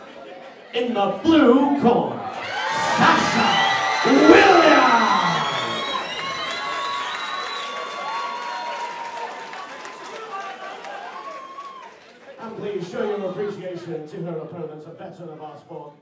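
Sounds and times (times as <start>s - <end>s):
crowd cheering: 2.2s - 13.6s
long drawn-out shout: 2.4s - 7.0s.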